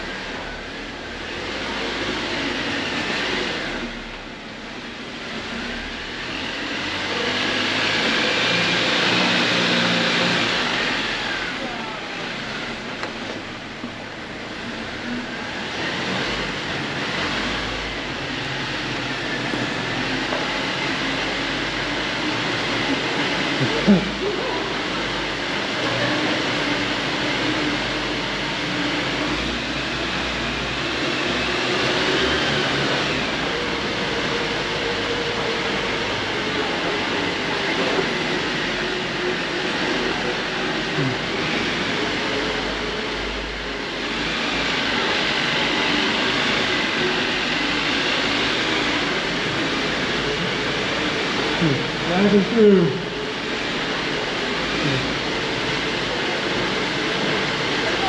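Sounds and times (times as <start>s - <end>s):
car engine running: 0.0s - 58.0s.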